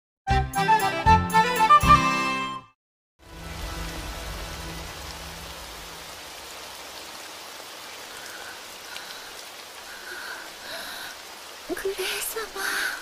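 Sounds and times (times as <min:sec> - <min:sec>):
heavy rainfall: 0:03.2 - 0:13.0.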